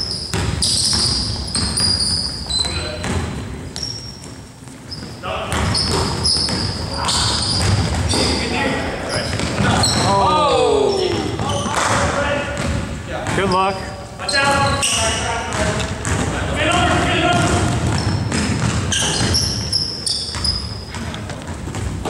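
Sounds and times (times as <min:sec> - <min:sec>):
basketball bouncing: 0:00.0 - 0:08.4, 0:09.2 - 0:10.1, 0:11.1 - 0:13.6, 0:15.4 - 0:22.0
sneakers squeaking: 0:00.0 - 0:22.0
players calling out: 0:05.4 - 0:12.6.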